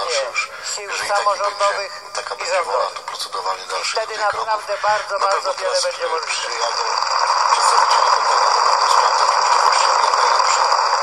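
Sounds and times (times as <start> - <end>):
speech: 0.0 - 10.8
radio static hiss: 0.0 - 11.0.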